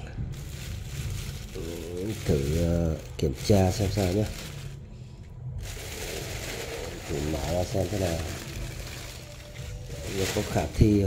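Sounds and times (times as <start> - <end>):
plastic bag crinkling: 0.0 - 11.0.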